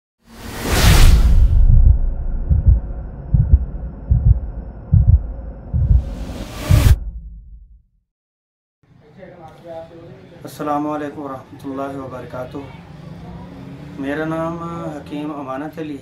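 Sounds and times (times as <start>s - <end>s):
loud whoosh: 0.3s - 7.7s
low drone: 0.4s - 7.1s
deep bass pulse: 0.8s - 7.9s.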